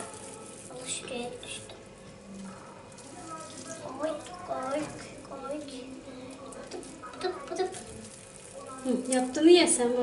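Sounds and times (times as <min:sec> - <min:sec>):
hands squeezing sticky mixture: 0:00.0 - 0:09.8.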